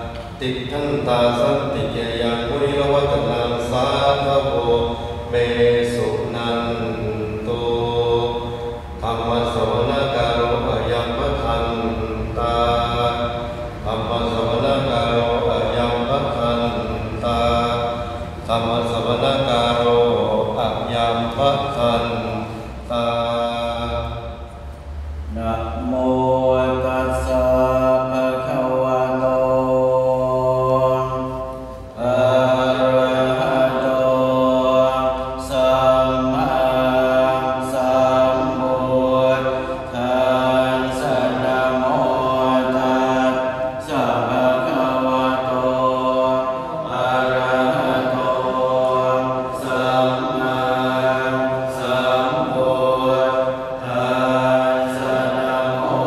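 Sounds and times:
monks chanting in unison: 0.0 - 56.0.

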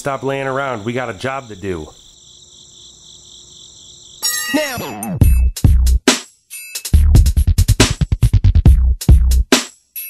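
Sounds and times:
crickets chirping: 0.0 - 4.9.

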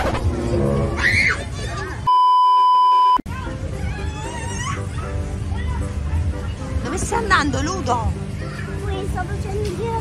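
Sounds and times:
steady electronic beep tone: 2.1 - 3.2.

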